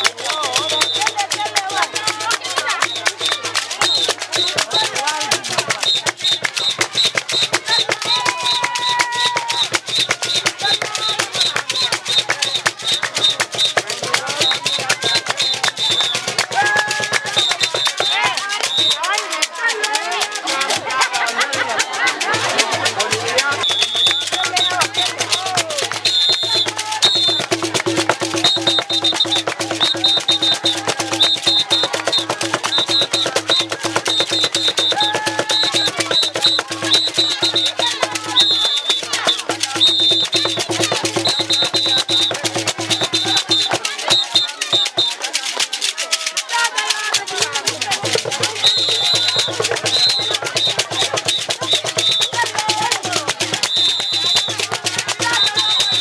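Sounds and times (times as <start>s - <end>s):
small hand drum: 0.0s - 56.0s
voices singing and calling: 0.0s - 56.0s
wooden disc rattles shaken: 0.0s - 56.0s
high whistle notes: 23.6s - 24.7s, 25.3s - 27.5s, 53.6s - 54.6s.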